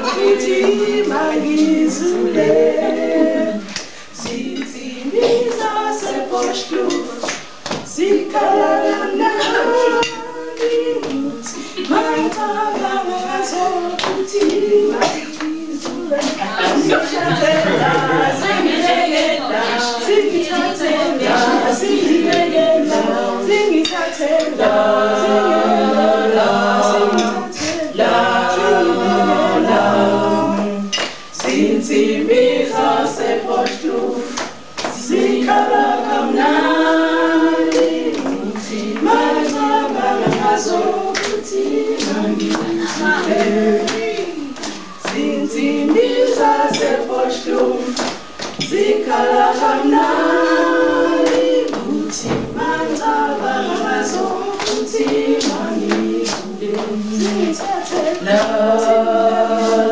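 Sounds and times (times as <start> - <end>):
group singing unaccompanied: 0.0 - 59.9.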